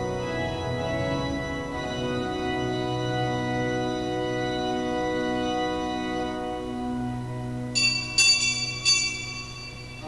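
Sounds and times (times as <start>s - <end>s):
pipe organ sustained chords: 0.0s - 10.0s
small high-pitched bell strikes: 7.8s - 10.0s.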